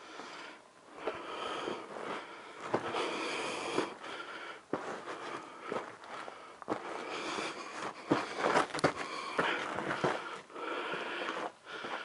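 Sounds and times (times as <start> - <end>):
steady scuffing: 1.0 - 12.0
footsteps on loose rock: 1.9 - 12.0.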